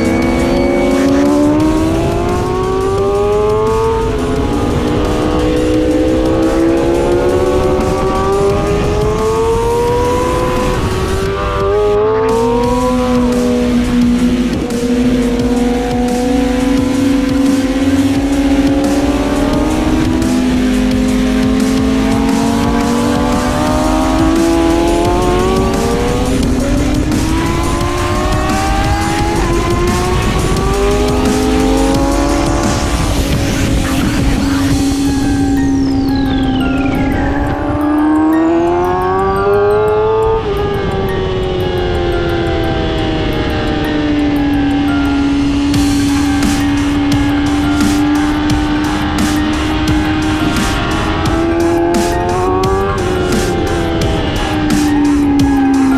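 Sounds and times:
motorcycle engine revving through gears: 0.0 - 55.9
rushing wind: 0.0 - 55.9.

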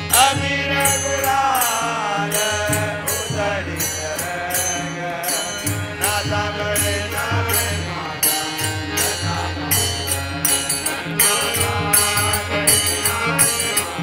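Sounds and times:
jingling percussion: 0.0 - 14.0
men singing in chorus: 0.0 - 14.0.

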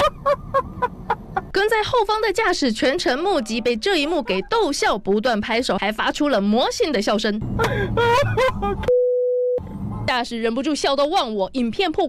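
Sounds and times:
traffic rumble: 0.0 - 8.9, 9.6 - 12.0
person laughing: 4.0 - 4.7, 7.6 - 8.9.

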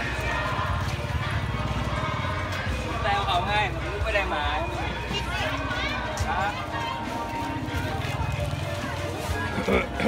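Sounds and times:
crowd chatter: 0.0 - 10.0
music playing: 0.0 - 10.0.

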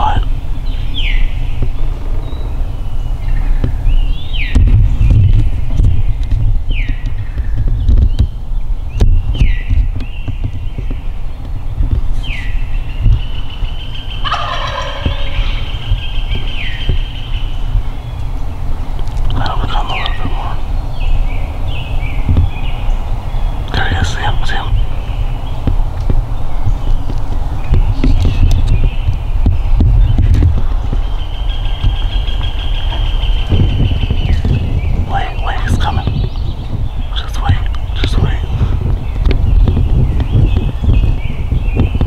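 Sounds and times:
low rumble: 0.0 - 42.0
songbirds whistling: 0.0 - 42.0
turkey gobbling: 14.2 - 15.8.

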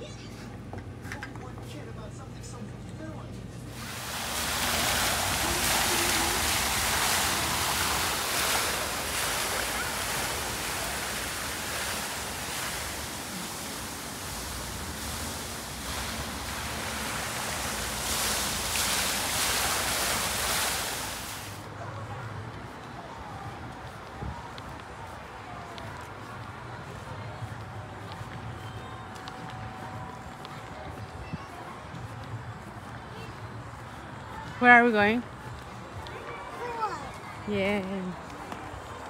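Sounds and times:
fountain water splashing into basin: 3.7 - 21.6.

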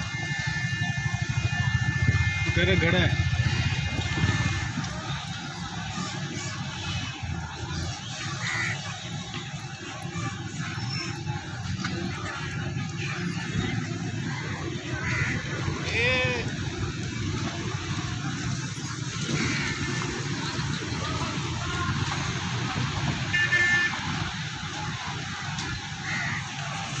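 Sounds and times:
engine and road rumble: 0.0 - 27.0
voices: 0.0 - 27.0
car horn toots: 23.3 - 24.2.

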